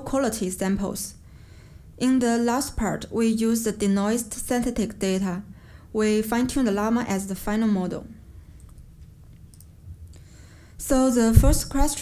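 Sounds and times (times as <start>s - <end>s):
low room hum: 0.0s - 12.0s
faint clicks: 8.6s - 10.2s.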